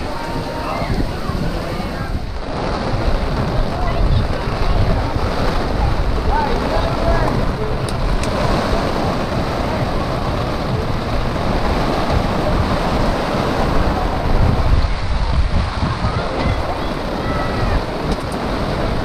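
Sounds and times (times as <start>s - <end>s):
heavy rain pouring: 0.0s - 19.0s
wind buffeting microphone: 0.0s - 19.0s.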